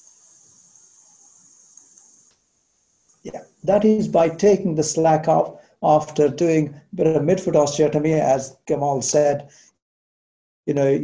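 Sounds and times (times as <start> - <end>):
high-pitched hiss: 0.0 - 7.0.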